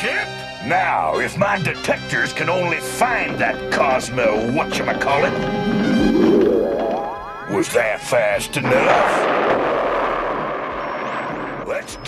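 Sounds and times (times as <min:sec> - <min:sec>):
voice: 0:00.0 - 0:05.4, 0:07.5 - 0:09.4, 0:11.6 - 0:12.0
loud sci-fi rushing noise: 0:04.9 - 0:07.2.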